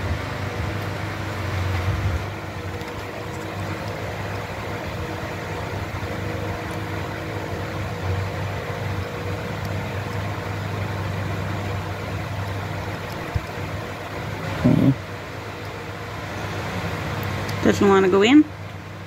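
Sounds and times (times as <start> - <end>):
machine hum: 0.0 - 19.0.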